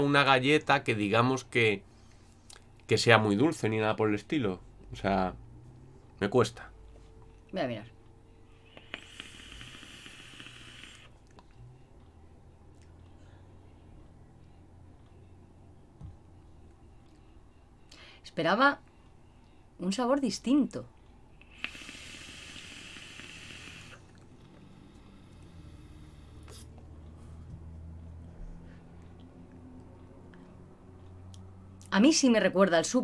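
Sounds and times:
e-cigarette vapour hiss: 0:08.6 - 0:11.2, 0:21.4 - 0:26.8
e-cigarette click: 0:08.7 - 0:10.9.

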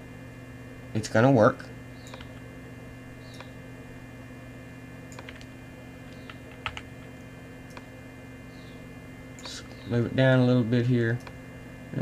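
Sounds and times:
low electrical hum: 0:00.0 - 0:12.0
keyboard and mouse clicks: 0:02.0 - 0:02.4, 0:03.3 - 0:03.5, 0:05.1 - 0:05.5, 0:06.1 - 0:06.9.

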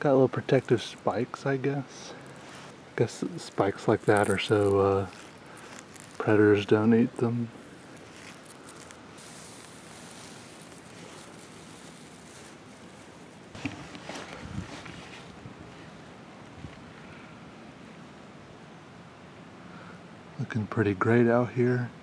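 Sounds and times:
light wind in a forest: 0:00.0 - 0:22.0
steps crunching through undergrowth: 0:02.1 - 0:15.4.

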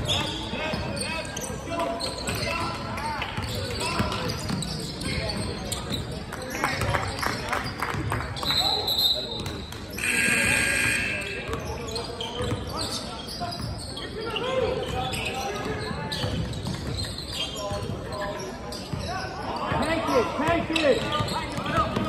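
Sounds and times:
players' voices echoing: 0:00.0 - 0:22.0
loud held call: 0:10.0 - 0:11.5.

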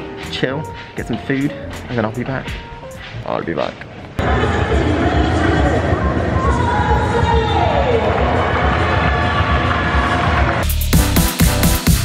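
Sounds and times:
music over public-address system: 0:00.0 - 0:03.6, 0:04.2 - 0:12.0.

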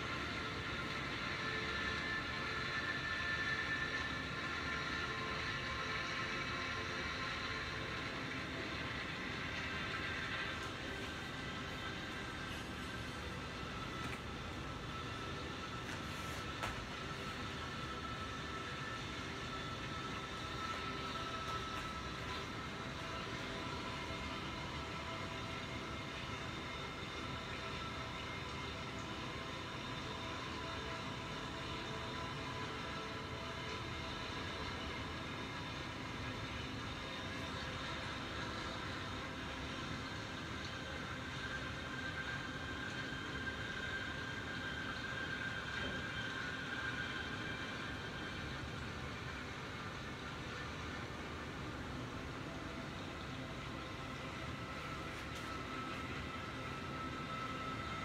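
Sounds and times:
faint high whines: 0:00.0 - 0:58.0.

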